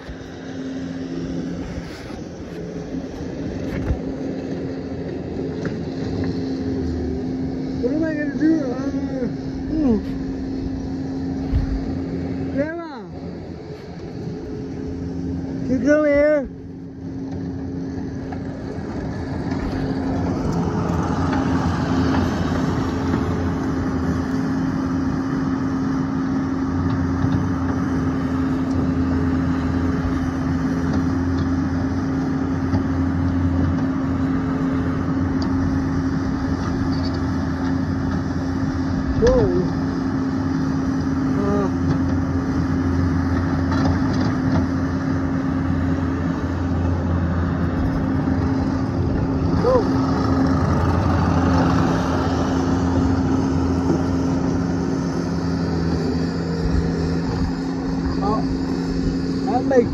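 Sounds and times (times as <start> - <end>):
engine running: 0.0 - 59.9.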